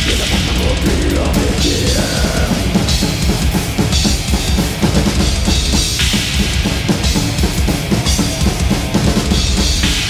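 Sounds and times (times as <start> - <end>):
metal band playing: 0.0 - 10.0
rapid bass drum strokes: 0.0 - 10.0.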